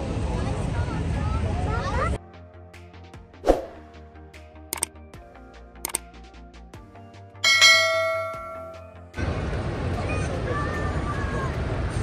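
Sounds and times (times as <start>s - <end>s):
bright bell ding: 7.4s - 9.1s.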